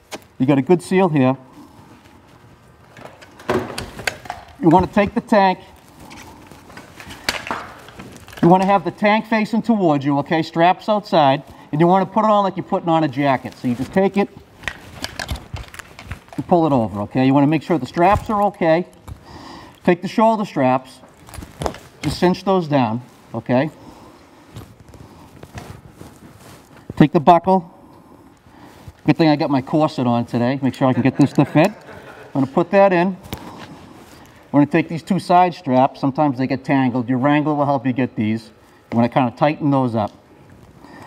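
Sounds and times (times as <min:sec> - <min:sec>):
air pack being handled: 0:00.0 - 0:00.4, 0:01.5 - 0:09.0, 0:13.2 - 0:22.3, 0:22.9 - 0:27.1, 0:27.9 - 0:29.8, 0:33.2 - 0:34.5
harness straps rustling and clicking: 0:00.0 - 0:10.1, 0:10.8 - 0:27.3, 0:27.9 - 0:36.0, 0:38.6 - 0:41.0.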